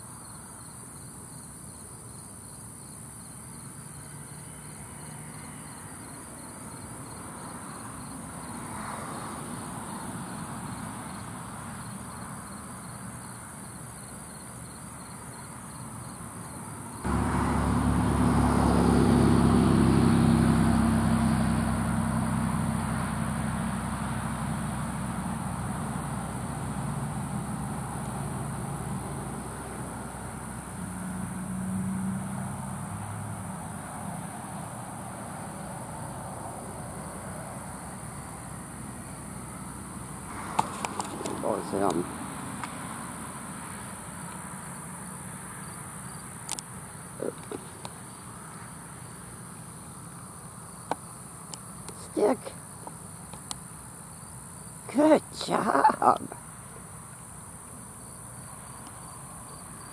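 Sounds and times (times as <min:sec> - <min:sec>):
insects chirring: 0:00.0 - 0:59.9
vehicle engine passing: 0:17.1 - 0:45.6.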